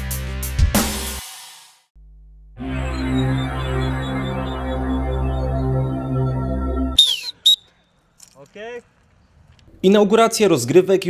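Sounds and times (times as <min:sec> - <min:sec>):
music with low drone: 0:02.6 - 0:07.0
sports whistle blasts: 0:07.0 - 0:07.7.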